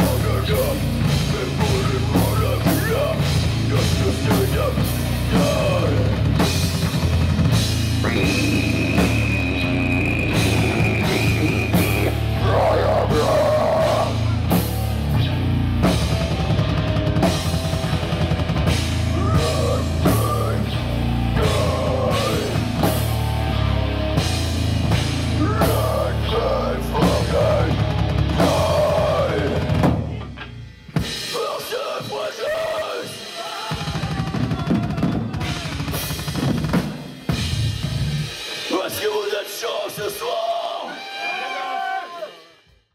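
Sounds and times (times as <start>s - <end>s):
heavy metal band playing: 0.0s - 42.8s.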